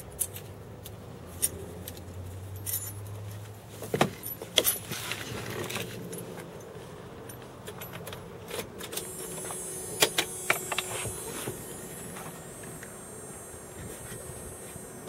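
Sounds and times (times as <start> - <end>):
metallic clicks and jingles: 0.1 - 3.4
low hum: 8.9 - 15.0.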